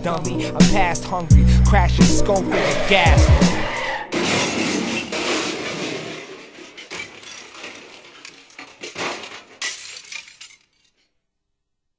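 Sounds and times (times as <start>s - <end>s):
glass shattering: 4.1s - 11.1s
glass tinkling: 9.6s - 11.0s.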